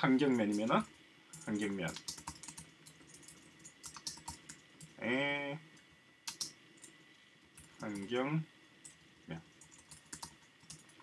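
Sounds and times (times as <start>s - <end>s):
computer keyboard typing: 0.3s - 5.0s, 6.3s - 6.9s, 8.8s - 11.0s.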